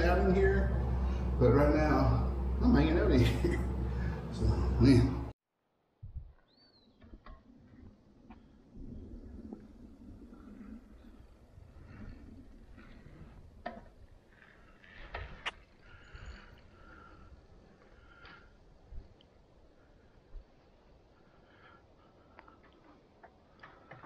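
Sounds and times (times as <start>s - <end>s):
low rumble: 0.0s - 5.3s
bird chirps: 6.4s - 7.2s.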